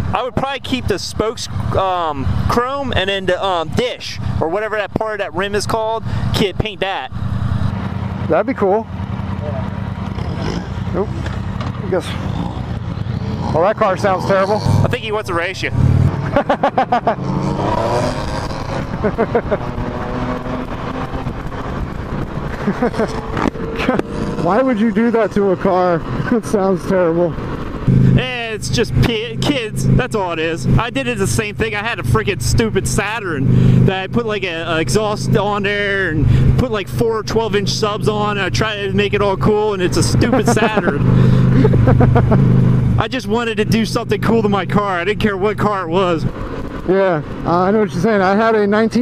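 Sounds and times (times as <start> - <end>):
car engine revving: 0.0 - 49.0
motorcycle engine: 0.0 - 49.0
wind noise: 17.6 - 24.4.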